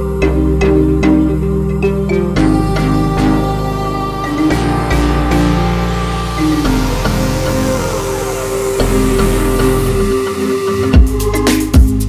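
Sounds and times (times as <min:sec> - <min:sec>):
instrumental music with bass line: 0:00.0 - 0:12.0.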